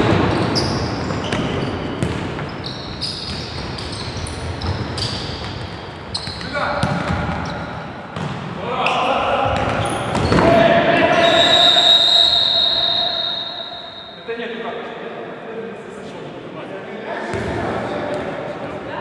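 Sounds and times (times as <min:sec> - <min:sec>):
trainers squeaking on court floor: 0:00.0 - 0:14.3
players shouting: 0:08.7 - 0:14.0
referee's whistle blast: 0:11.1 - 0:14.3.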